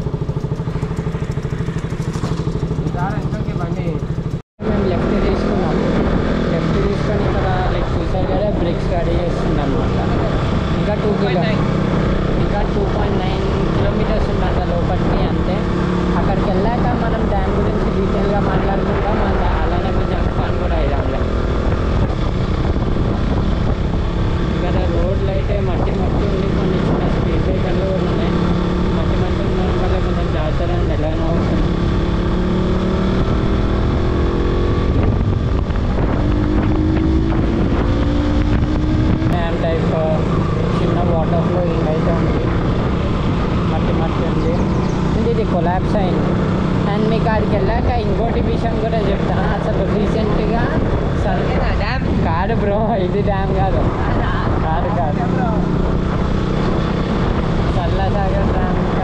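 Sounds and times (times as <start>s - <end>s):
motorcycle engine running: 0.0s - 59.0s
wind on microphone: 0.0s - 59.0s.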